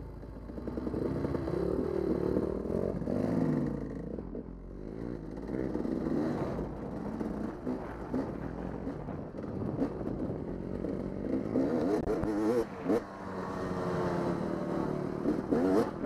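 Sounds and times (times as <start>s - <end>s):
dirt bike engine revving: 0.5s - 16.0s.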